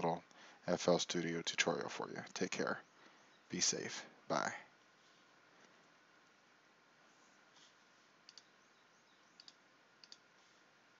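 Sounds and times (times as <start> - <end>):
low hiss: 0.0 - 11.0
computer mouse clicks: 8.2 - 8.5, 9.3 - 10.4.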